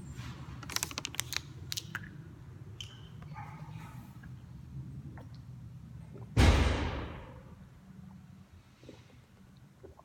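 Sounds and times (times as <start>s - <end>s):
steady low hum: 1.4s - 10.0s.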